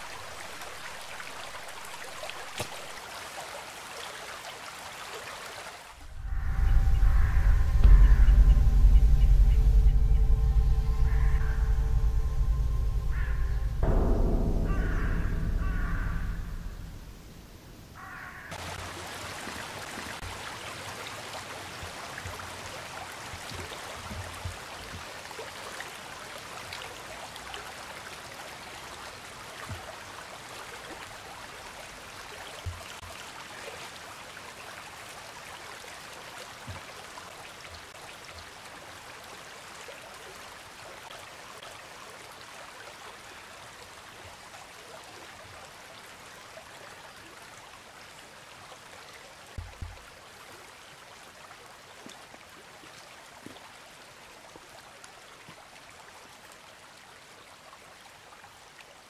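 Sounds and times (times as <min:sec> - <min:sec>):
small stream running: 0:00.0 - 0:59.0
soft low knocks: 0:06.0 - 0:18.0.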